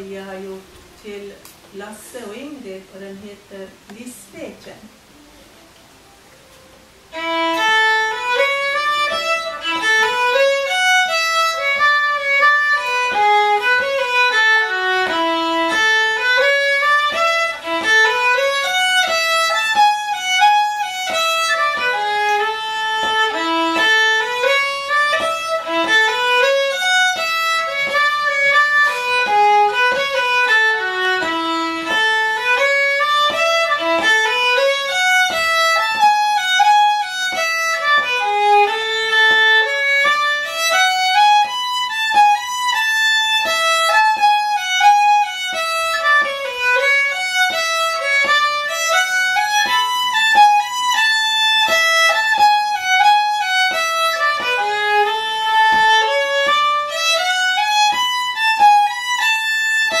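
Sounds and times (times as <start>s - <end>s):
fiddle melody: 5.0s - 60.0s.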